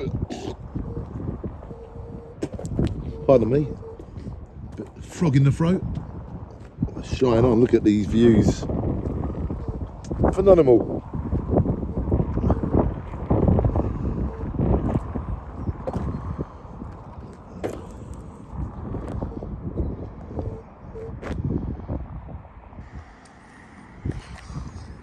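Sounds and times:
wind rumbling on microphone: 0.0s - 25.0s.

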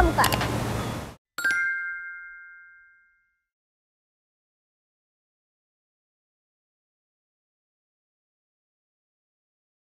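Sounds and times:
bell-like ding: 1.4s - 3.5s.

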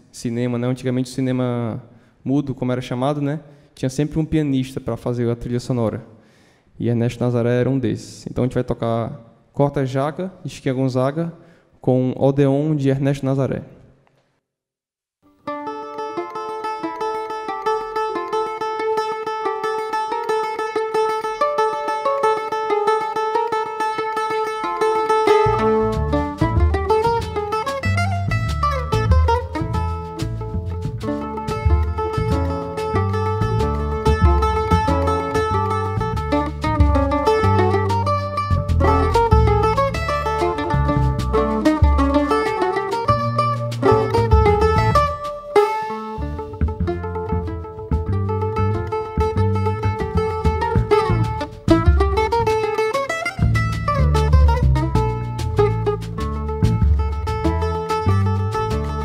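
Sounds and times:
mandolin playing: 15.3s - 59.0s
double bass: 16.0s - 59.0s
drum kit: 25.2s - 59.0s.

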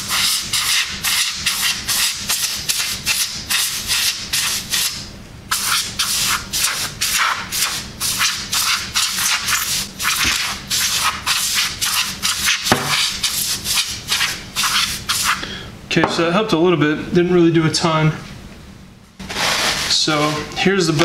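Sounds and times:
compressed air spray bursts: 0.0s - 15.4s.

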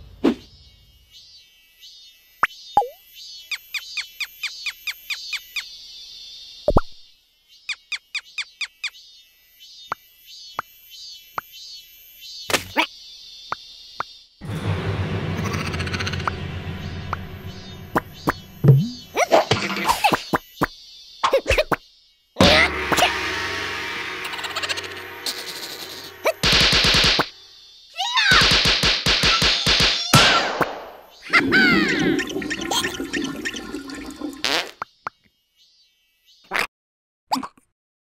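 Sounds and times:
cartoon falling squeaks: 31.2s - 32.9s
cartoon falling plops: 31.3s - 34.7s.

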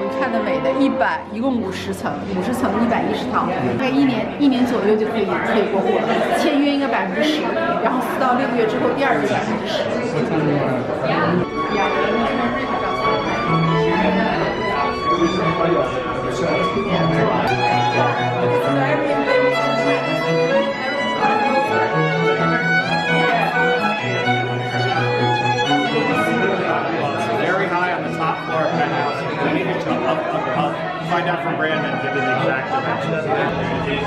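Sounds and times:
low bowed notes: 0.0s - 6.4s, 7.1s - 34.0s
crowd chatter: 0.0s - 34.0s
violin melody: 0.0s - 34.0s.

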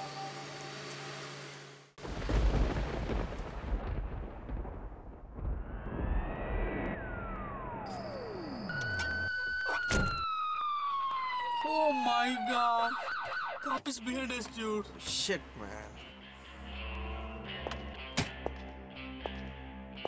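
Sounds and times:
low rumble: 2.1s - 8.6s
tone rising and dropping in pitch: 5.6s - 13.6s
police siren wailing and yelping: 7.0s - 13.8s.

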